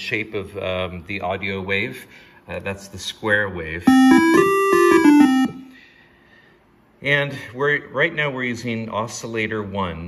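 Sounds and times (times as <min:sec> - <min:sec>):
square wave synth notes: 0:03.9 - 0:05.7.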